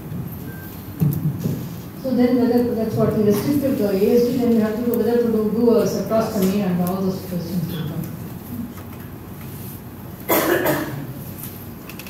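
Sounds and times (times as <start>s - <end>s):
person coughing: 10.3s - 11.2s.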